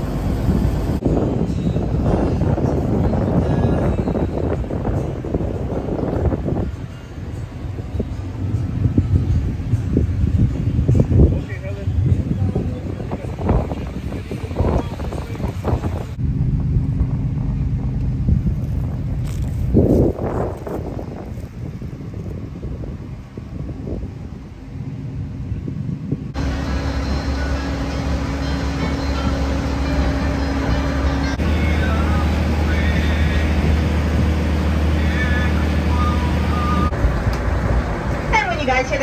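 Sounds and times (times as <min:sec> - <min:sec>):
locomotive engine humming: 0:00.0 - 0:39.0
quiet rumble: 0:00.0 - 0:39.0
people talking: 0:11.3 - 0:15.9, 0:38.3 - 0:39.0.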